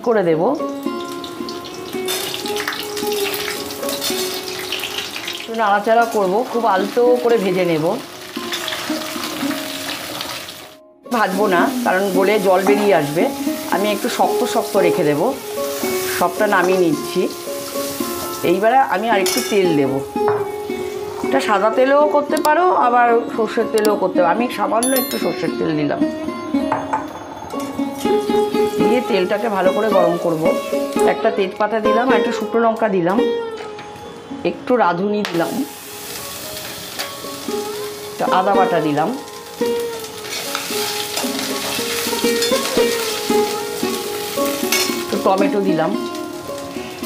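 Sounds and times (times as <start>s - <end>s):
vegetables sizzling in a pan: 0.0s - 21.9s, 27.7s - 32.4s, 35.2s - 47.0s
background music: 0.0s - 47.0s.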